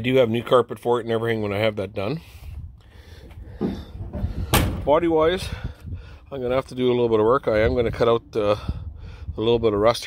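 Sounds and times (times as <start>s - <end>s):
car door slamming shut: 4.5s - 4.9s.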